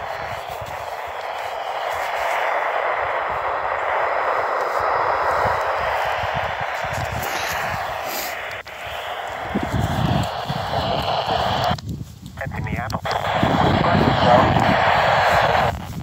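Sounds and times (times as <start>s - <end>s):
radio static hiss: 0.0s - 16.0s.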